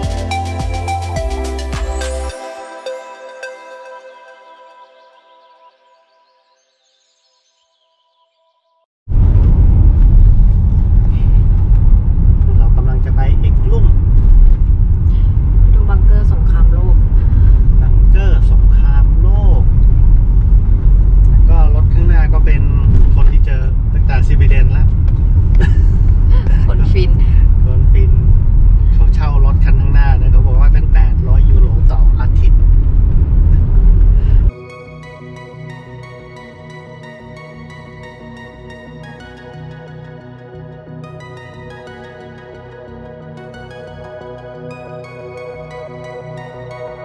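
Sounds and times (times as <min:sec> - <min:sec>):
road and wind noise in a van: 0:09.1 - 0:34.6.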